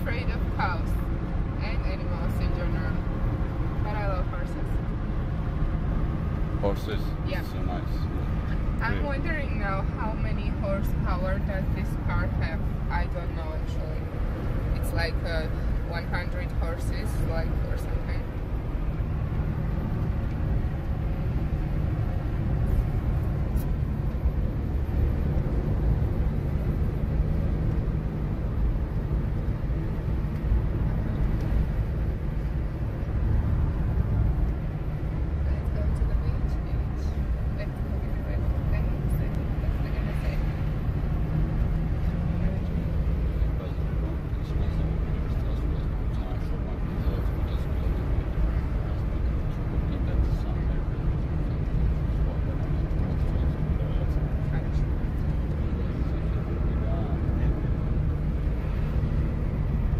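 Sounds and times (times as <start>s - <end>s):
car engine and tyre rumble: 0.0s - 59.9s
road and wind noise: 0.0s - 59.9s.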